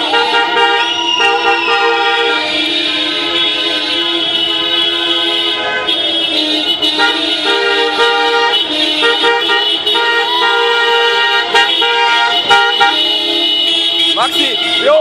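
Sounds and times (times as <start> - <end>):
car horns honking: 0.0 - 15.0.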